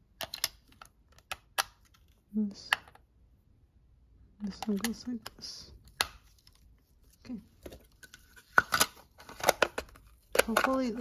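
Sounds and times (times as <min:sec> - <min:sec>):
plastic clicks and snaps: 0:00.2 - 0:03.0.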